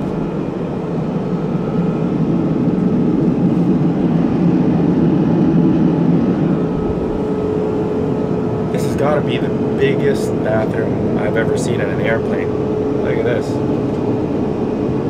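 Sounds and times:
airplane cabin drone: 0.0 - 15.0
faint steady hum: 0.0 - 15.0.

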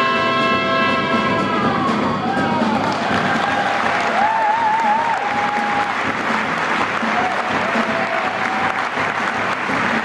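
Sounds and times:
big band sustained chord: 0.0 - 1.8
applause: 2.6 - 10.0.

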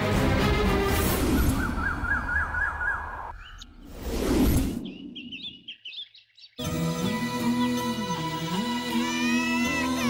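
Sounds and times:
small birds chirping: 1.5 - 3.9, 4.7 - 10.0.

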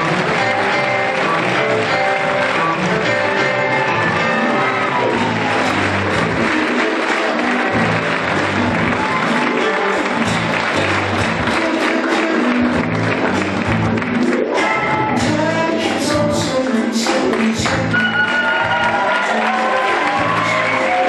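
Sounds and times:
audience applauding and cheering: 0.0 - 21.0
rock music: 0.0 - 21.0.

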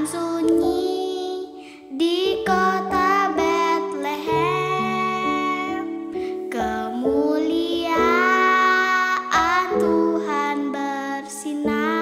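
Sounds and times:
girl singing: 0.0 - 12.0
soft instrumental backing: 0.0 - 12.0.

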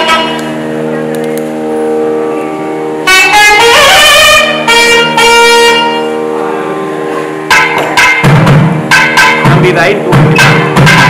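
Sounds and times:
double-reed oboe playing: 0.0 - 11.0.

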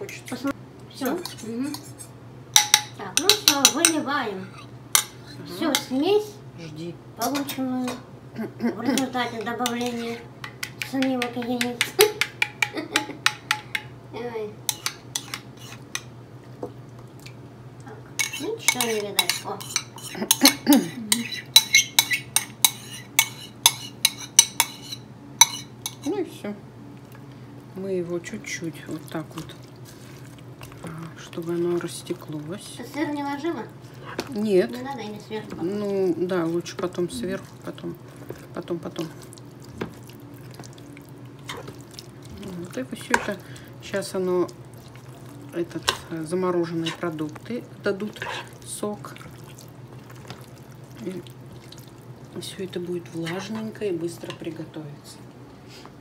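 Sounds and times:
faint steady hum: 0.0 - 56.0
fork stirring wet mixture in pot: 2.6 - 4.1, 9.0 - 13.9, 14.7 - 16.1, 18.2 - 26.2, 28.5 - 54.7
utensil clicking against ceramic bowl: 10.4 - 13.9.

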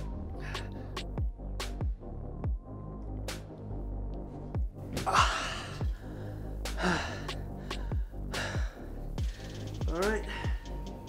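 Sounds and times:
electronic music with kick drum: 0.0 - 11.0
man gasping and breathing hard: 4.9 - 11.0.

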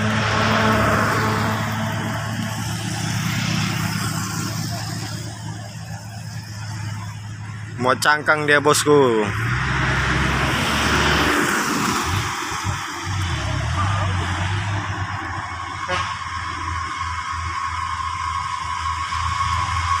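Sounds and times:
diesel truck engine rumbling: 0.0 - 20.0.

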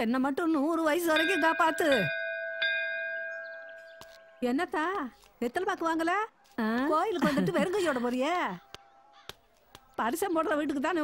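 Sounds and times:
temple bell ringing: 1.0 - 4.7.

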